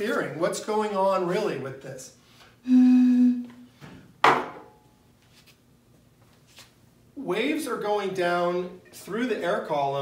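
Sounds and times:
air blown across bottle: 2.6s - 3.7s.

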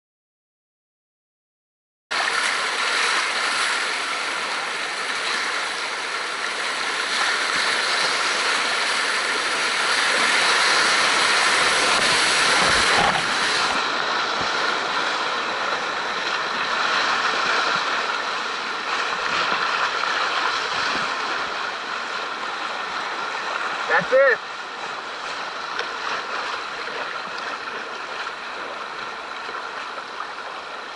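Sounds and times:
whitewater rapid rushing: 2.1s - 30.9s.

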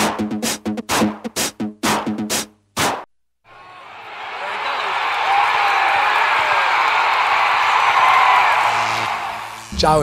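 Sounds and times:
crowd cheering and whooping: 3.5s - 9.7s.

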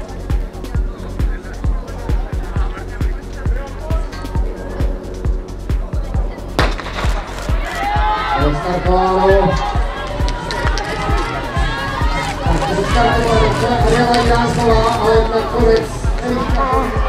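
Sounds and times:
music with steady beat: 0.0s - 17.0s
starting pistol shot: 6.6s - 7.2s
raised voices: 7.3s - 17.0s.

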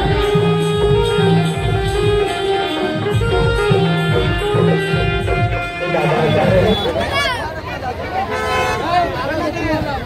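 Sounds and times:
car horn honk: 0.1s - 9.2s
crowd voices shouting: 5.9s - 9.9s.

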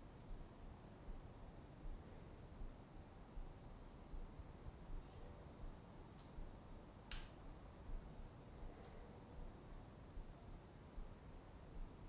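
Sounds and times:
faint click: 6.1s - 6.4s, 7.1s - 7.4s.

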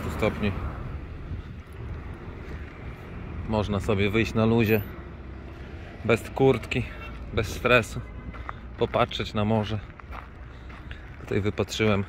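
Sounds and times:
wind on microphone: 0.0s - 3.5s
street traffic noise: 0.0s - 12.0s.

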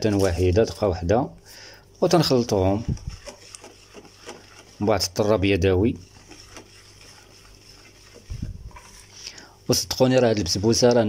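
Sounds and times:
whisk scraping plastic bowl: 0.0s - 1.0s, 2.0s - 11.0s
person speaking: 0.0s - 1.4s, 2.0s - 3.4s, 4.2s - 7.2s, 8.1s - 11.0s
whisk wires clicking on bowl: 2.8s - 11.0s.

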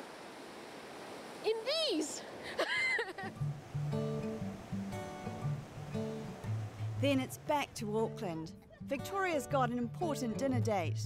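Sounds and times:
woman speaking: 1.4s - 2.3s, 7.0s - 11.0s.

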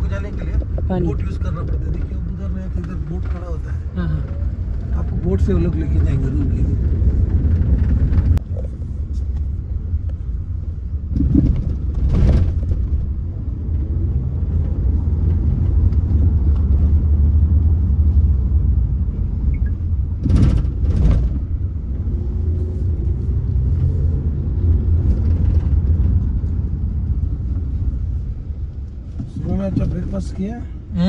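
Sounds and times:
steady low rumble: 0.0s - 31.0s.

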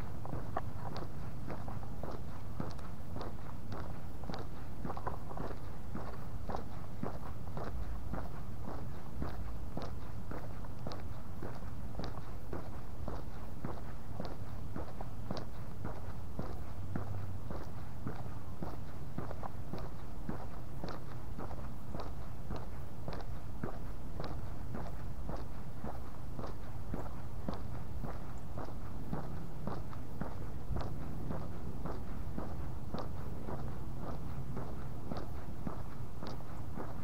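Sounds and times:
footsteps on concrete: 0.0s - 37.0s
low outdoor rumble: 0.0s - 37.0s.

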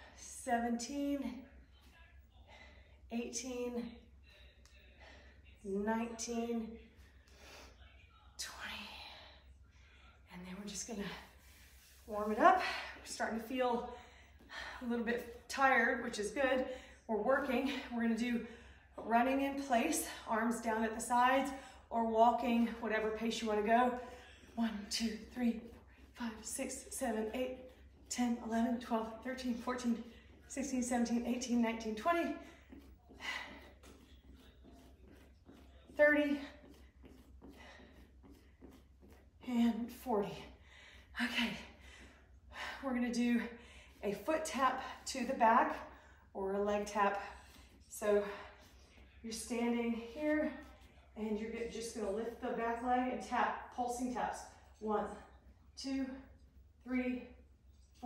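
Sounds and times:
woman breathing: 13.8s - 15.4s, 16.6s - 19.0s, 40.4s - 44.0s.

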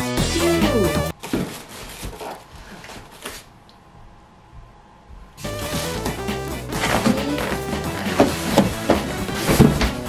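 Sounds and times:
background music: 0.0s - 1.1s, 5.4s - 10.0s
plastic and cardboard packaging rustling: 1.1s - 3.5s, 5.4s - 10.0s.

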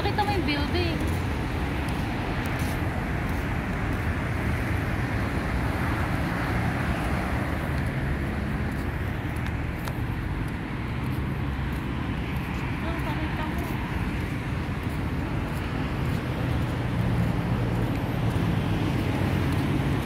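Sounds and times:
cars driving past: 0.0s - 20.0s.

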